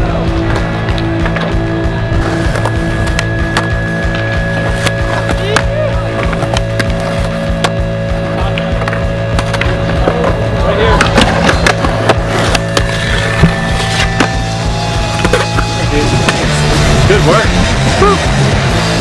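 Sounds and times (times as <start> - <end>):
music: 0.0 - 19.0
skateboard wheels rolling on concrete: 0.0 - 19.0
skateboard clacks popping and landing: 8.5 - 14.4
skateboard grinding on ledges: 8.6 - 17.0.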